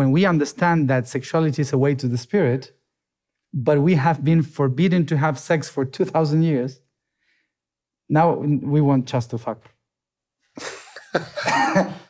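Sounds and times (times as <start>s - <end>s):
man laughing: 10.6s - 12.0s.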